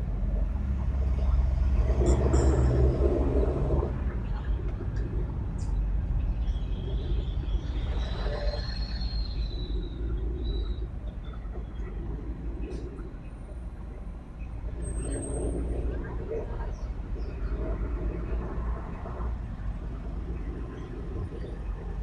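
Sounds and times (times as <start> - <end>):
city traffic rumble: 0.0 - 22.0.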